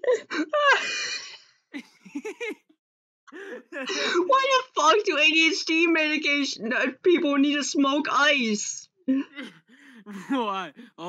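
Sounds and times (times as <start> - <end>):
man laughing hard: 1.8 - 2.7, 10.0 - 11.0.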